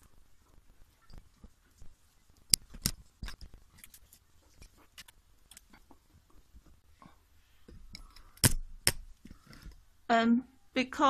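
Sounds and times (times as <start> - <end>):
rustling of artificial vine: 0.0 - 9.9.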